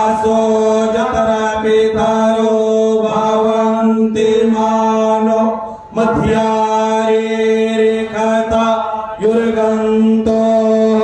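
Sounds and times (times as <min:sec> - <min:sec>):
mantras chanted: 0:00.0 - 0:11.0.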